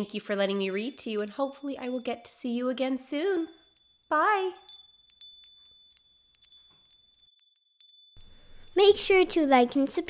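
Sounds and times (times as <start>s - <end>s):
tinkling chimes: 0.0s - 10.0s.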